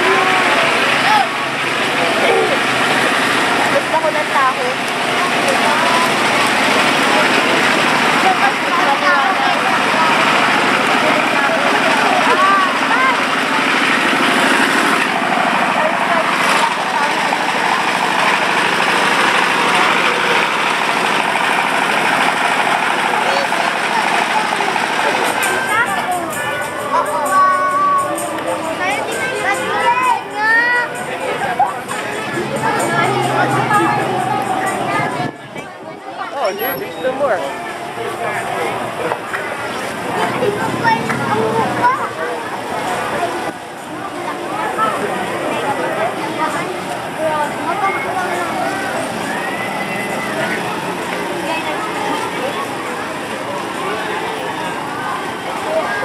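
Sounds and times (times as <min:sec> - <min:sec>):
crowd murmur: 0:00.0 - 0:56.0.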